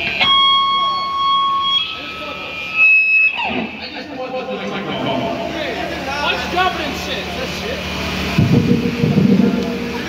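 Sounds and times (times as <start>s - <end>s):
amplifier feedback whine: 0.0s - 10.0s
people talking at once: 0.4s - 8.3s.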